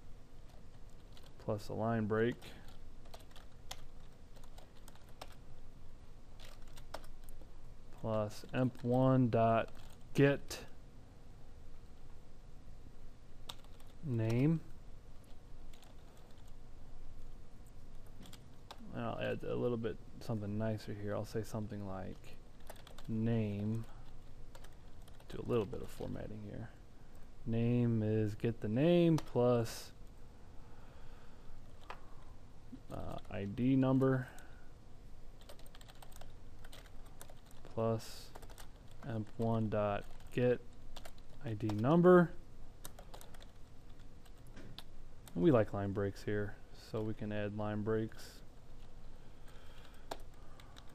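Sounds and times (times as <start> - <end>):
typing on computer keyboard: 0.5 - 1.5, 2.4 - 5.4, 6.4 - 7.4, 9.6 - 10.0, 13.5 - 14.4, 15.7 - 16.6, 22.6 - 23.2, 23.8 - 25.7, 35.4 - 41.8, 42.8 - 45.4, 49.8 - 50.9.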